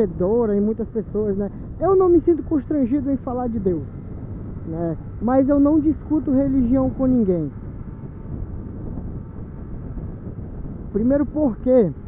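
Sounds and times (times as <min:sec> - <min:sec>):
motorcycle engine rumble: 0:00.0 - 0:12.0
road noise: 0:00.0 - 0:12.0
wind on microphone: 0:00.0 - 0:12.0.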